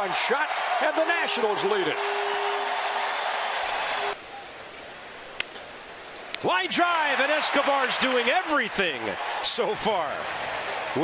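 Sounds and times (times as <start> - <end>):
crowd cheering and applauding: 0.0 - 4.2, 6.7 - 11.0
stadium ambience: 0.0 - 11.0.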